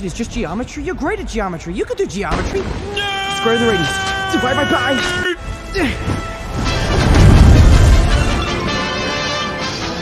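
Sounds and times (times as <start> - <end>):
film score music: 0.0 - 10.0
deep rumbling rush: 5.4 - 9.2.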